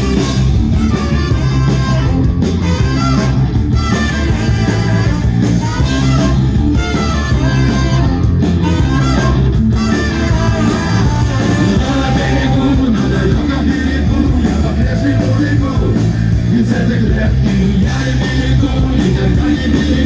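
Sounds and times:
trumpet: 0.0s - 13.3s
saxophone: 0.0s - 16.5s
bass guitar: 0.0s - 20.0s
drums: 0.0s - 20.0s
electric guitar: 0.0s - 20.0s.

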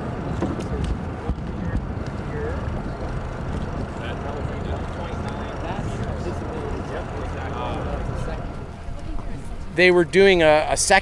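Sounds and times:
faint voices talking: 0.0s - 11.0s
small boat rumble: 0.0s - 11.0s.

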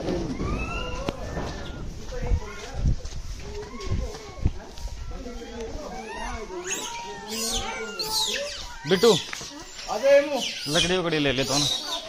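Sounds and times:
shrill wavering cries: 5.9s - 12.0s.

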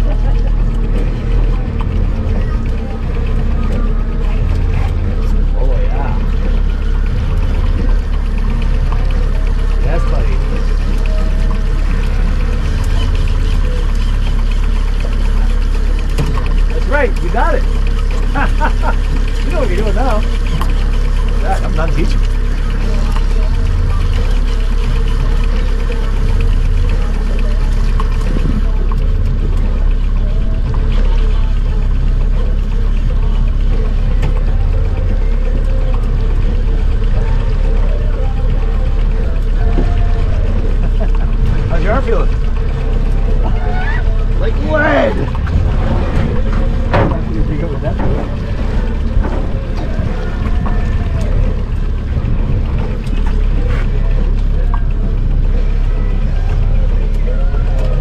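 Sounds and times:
boat motor rumbling: 0.0s - 58.0s
indistinct voices: 0.0s - 58.0s.

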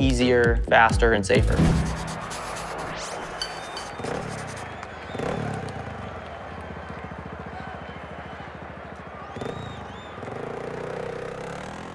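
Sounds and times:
dirt bike engine revving: 1.9s - 11.9s.

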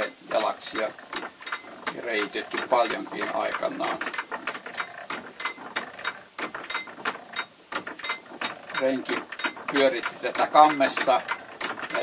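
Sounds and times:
hand-cranked drill ratchet clicking: 0.0s - 12.0s.

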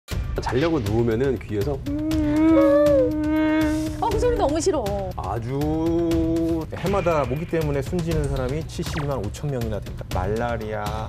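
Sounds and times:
mosquito whining buzz: 1.9s - 4.1s.

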